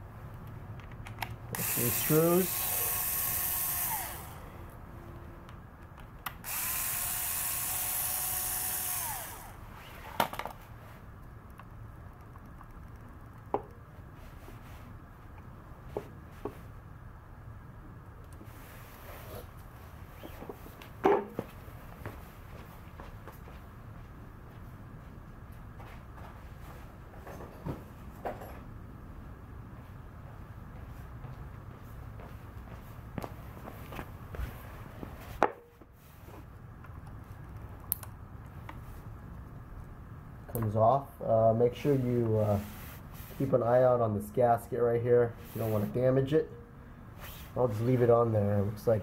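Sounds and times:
electric screwdriver whirring: 1.5 - 4.5, 6.4 - 9.6.

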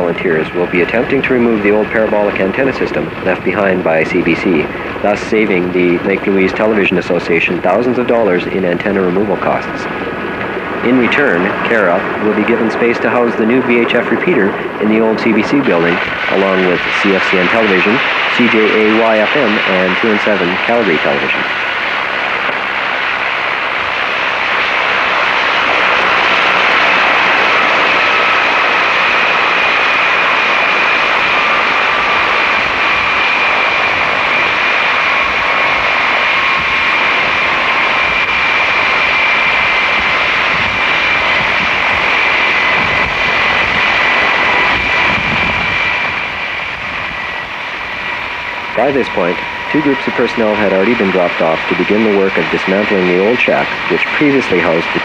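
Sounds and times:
helicopter rotor and engine noise: 0.0 - 55.0
high turbine whine: 0.0 - 55.0.

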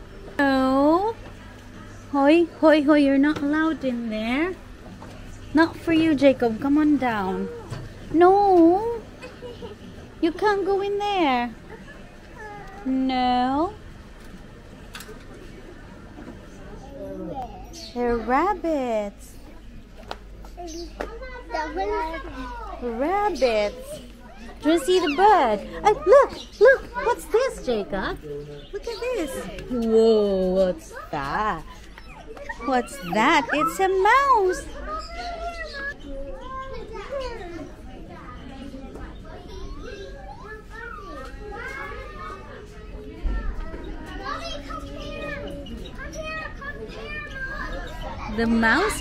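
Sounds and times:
young children chattering: 0.0 - 49.0.

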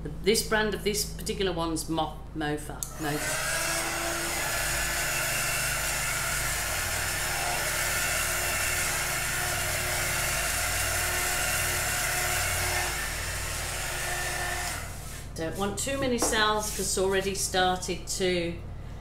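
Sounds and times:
heat gun fan humming: 2.8 - 19.0.

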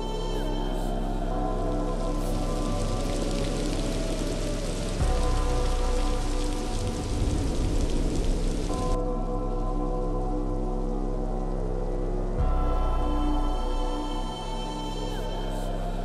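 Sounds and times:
rain: 0.0 - 16.0
sustained musical drone: 0.0 - 16.0
deep low hit: 5.0 - 13.0.

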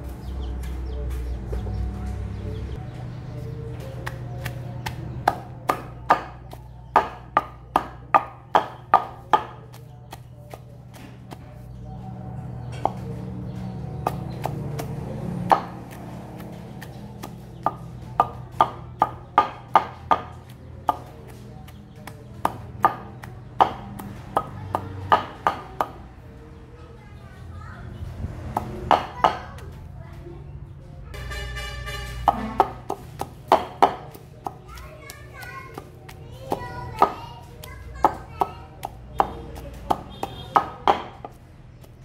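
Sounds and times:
wooden pestle pounding in mortar: 3.8 - 11.8, 12.6 - 26.2, 28.4 - 29.7, 32.1 - 42.0.

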